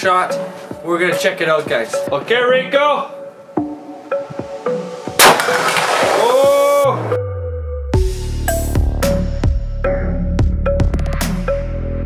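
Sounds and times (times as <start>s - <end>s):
soft plucked background music: 0.0s - 11.6s
loud rifle shot: 5.2s - 6.3s.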